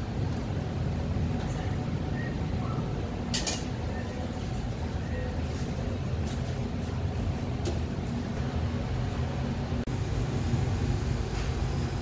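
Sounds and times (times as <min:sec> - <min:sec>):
kitchen ventilation rumble: 0:00.0 - 0:12.0.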